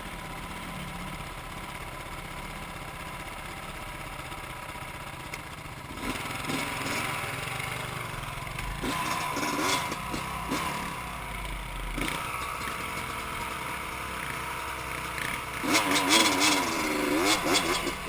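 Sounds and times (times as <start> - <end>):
dirt bike engine revving: 5.9 - 18.0.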